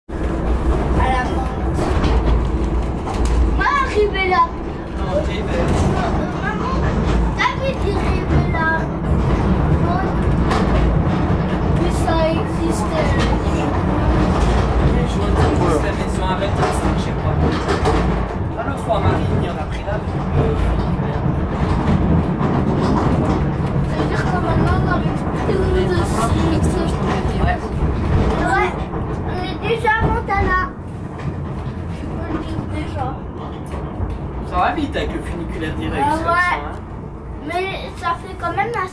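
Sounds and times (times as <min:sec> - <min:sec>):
funicular car rumbling on track: 0:00.1 - 0:38.9
people's voices: 0:00.7 - 0:38.9.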